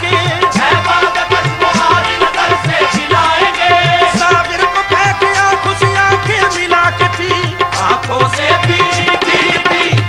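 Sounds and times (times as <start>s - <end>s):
ornamented sung melody: 0.0s - 10.0s
tabla rhythm: 0.0s - 10.0s.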